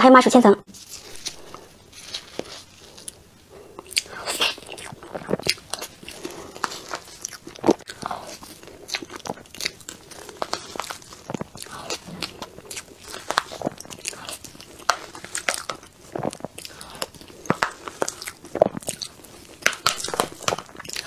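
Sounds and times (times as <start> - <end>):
wet mouth eating sounds: 2.8 - 21.0.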